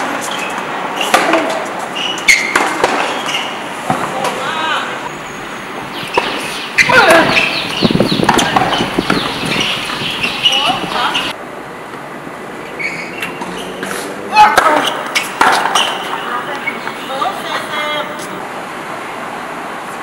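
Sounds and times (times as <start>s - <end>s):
tennis ball being struck: 1.0s - 4.4s, 6.0s - 11.0s, 13.8s - 17.0s
people talking: 4.0s - 5.0s, 6.9s - 7.4s, 8.3s - 9.1s, 10.4s - 11.4s, 16.0s - 18.4s.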